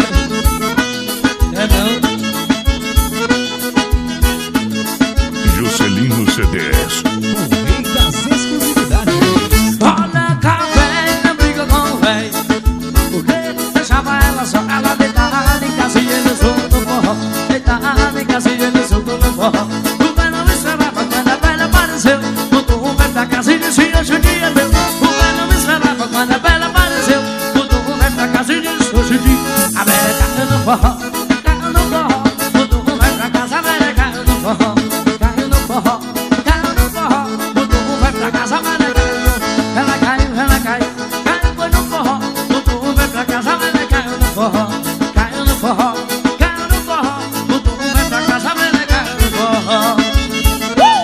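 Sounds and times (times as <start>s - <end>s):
accordion band music: 0.0s - 51.0s
bass drum beat: 3.8s - 12.2s.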